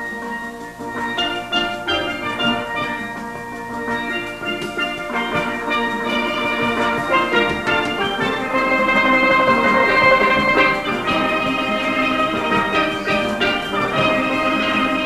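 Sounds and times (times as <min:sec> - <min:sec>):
percussion rhythm: 0:00.0 - 0:15.0
steelpans ringing notes: 0:00.0 - 0:15.0.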